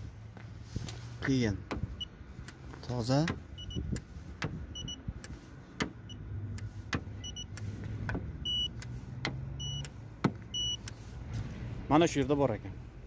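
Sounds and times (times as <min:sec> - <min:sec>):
short high beeps: 0:10.5 - 0:10.8.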